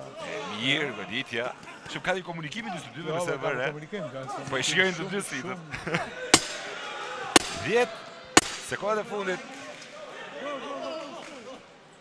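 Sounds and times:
voices and commentary: 0.0 - 10.8
sharp knocks: 6.4 - 6.7, 7.4 - 7.7, 8.4 - 8.8.

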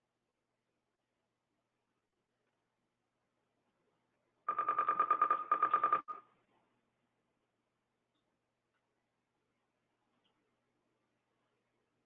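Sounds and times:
electronic telephone ringer trilling: 4.5 - 6.2.

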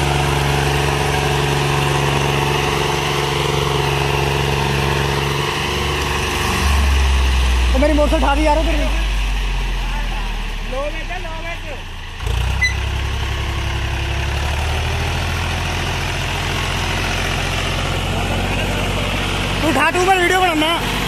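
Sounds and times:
tractor diesel engine under load: 0.0 - 21.0.

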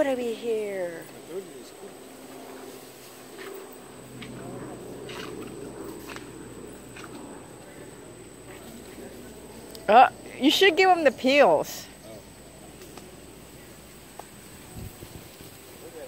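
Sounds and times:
murmured voices: 0.0 - 16.0.

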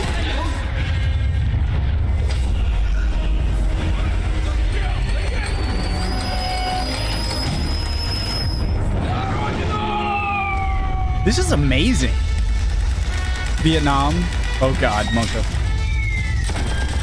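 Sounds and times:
music: 0.0 - 17.0
thin high whistling tone: 5.2 - 8.8
battle sound effects: 13.2 - 15.6.

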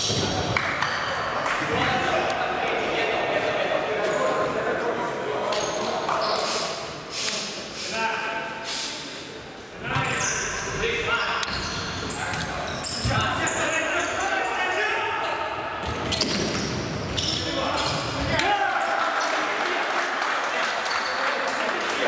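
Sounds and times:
shoes squeaking on court floor: 5.5 - 6.9, 9.2 - 14.5, 15.8 - 18.2, 20.7 - 21.2.

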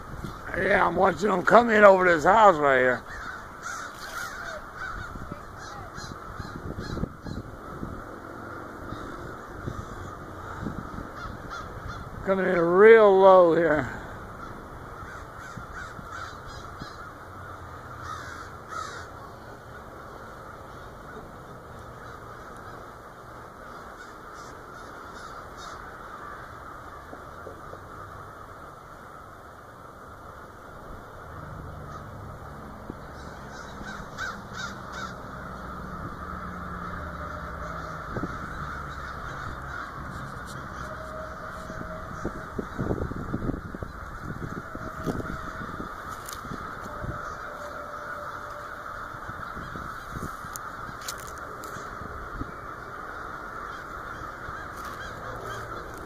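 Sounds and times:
crows cawing: 0.0 - 56.0
distant crows calling: 0.0 - 56.0.

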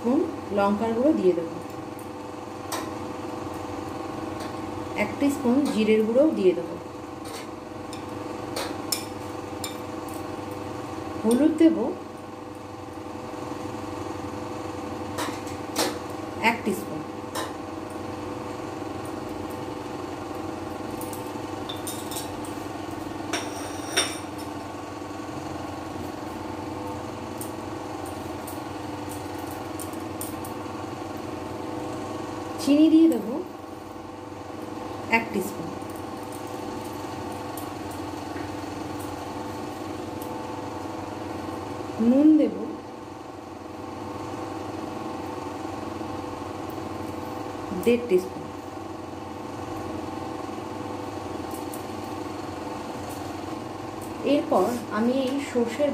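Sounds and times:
steady mechanical hum: 0.0 - 55.9.

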